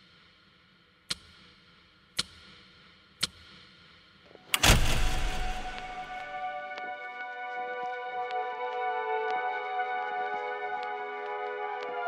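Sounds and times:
sharp tick: 1.1s - 1.6s, 2.2s - 3.4s
loud bass hit with noise rush: 4.6s - 6.2s.

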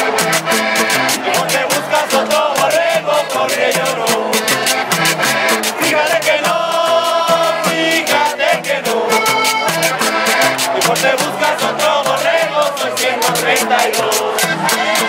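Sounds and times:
accordion playing lively tune: 0.0s - 15.0s
fast percussive beat: 0.0s - 15.0s
stepping bass line: 0.0s - 15.0s.

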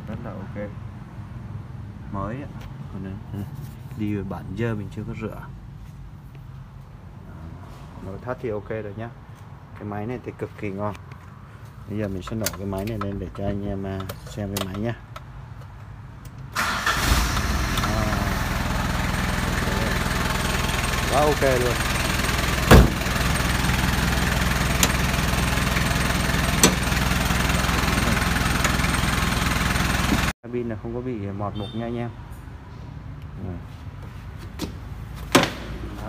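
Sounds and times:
diesel engine starting and idling: 16.5s - 30.3s.

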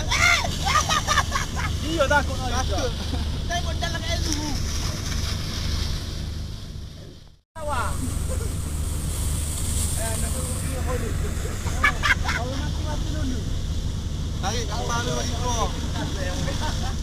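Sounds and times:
boat engine drone: 0.0s - 17.0s.

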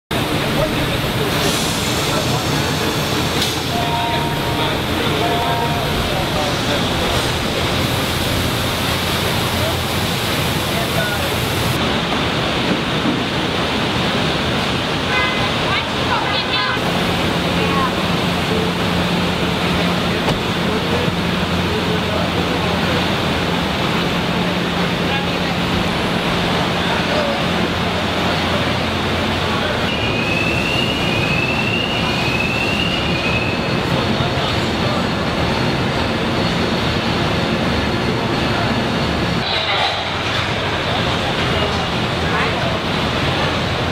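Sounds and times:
assembly line machinery din: 0.1s - 12.6s
machinery and ventilation rushing: 0.1s - 43.9s
rising machine squeals: 3.7s - 8.0s, 29.8s - 34.1s.

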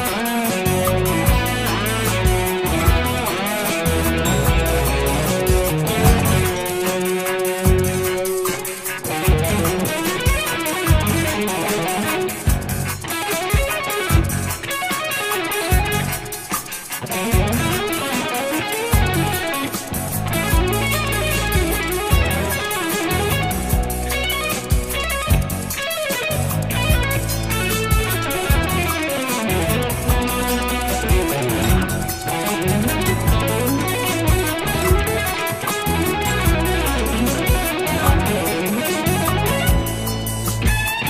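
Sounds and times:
low bass notes: 0.0s - 6.9s, 7.6s - 8.4s, 9.2s - 9.9s, 10.9s - 11.4s, 12.5s - 13.0s, 14.1s - 14.6s, 17.3s - 17.8s, 18.9s - 19.4s, 20.0s - 25.8s, 26.4s - 41.0s
electric guitar fast single notes: 0.0s - 41.0s
ticking percussion: 0.0s - 41.0s.

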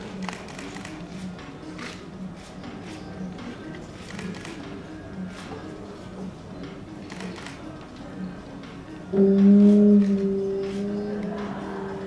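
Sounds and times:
music with low held notes: 0.2s - 12.0s.

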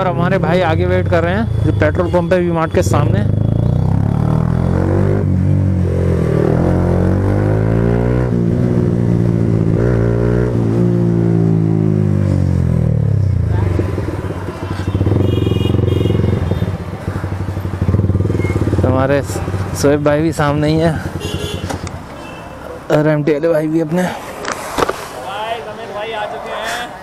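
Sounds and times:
motorcycle engine accelerating: 3.0s - 19.8s.

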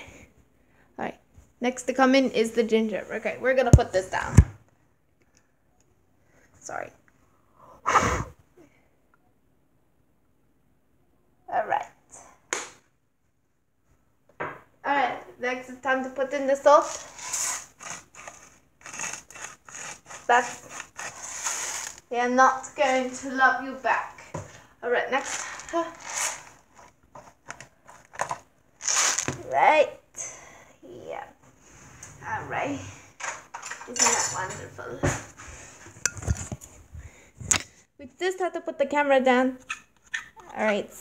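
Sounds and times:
short gritty rasps of salt: 16.8s - 22.1s, 25.1s - 27.4s
kitchenware clinking: 33.2s - 34.8s.

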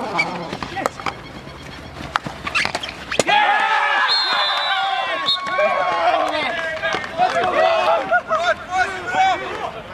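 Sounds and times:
men shouting and cheering: 3.2s - 9.9s.

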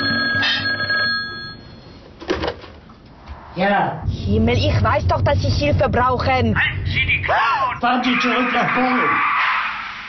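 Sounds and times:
desk telephone ringing: 0.0s - 1.9s.

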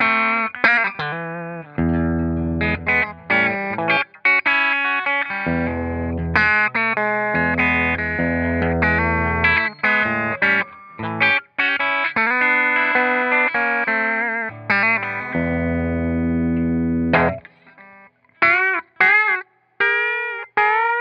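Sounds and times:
electric guitar chords and notes: 0.0s - 21.0s.

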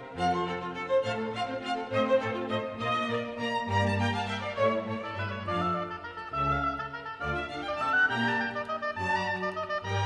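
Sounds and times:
orchestral music: 0.0s - 10.0s.

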